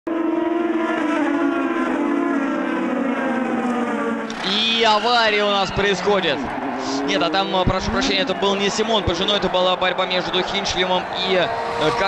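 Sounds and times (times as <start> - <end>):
racing car engines at high revs: 0.1 - 4.6, 5.5 - 12.0.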